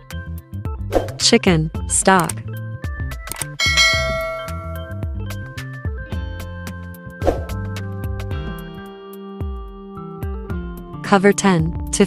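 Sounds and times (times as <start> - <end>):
background music: 0.0 - 12.0
bright bell chime: 3.6 - 5.3.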